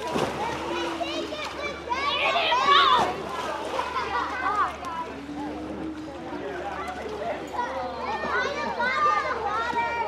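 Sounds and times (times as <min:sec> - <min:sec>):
children shouting: 0:00.0 - 0:04.8, 0:07.6 - 0:10.0.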